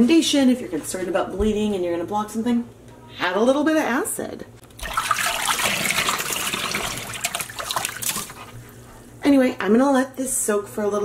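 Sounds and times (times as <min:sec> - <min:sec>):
tap water running into tub: 0:04.7 - 0:08.6.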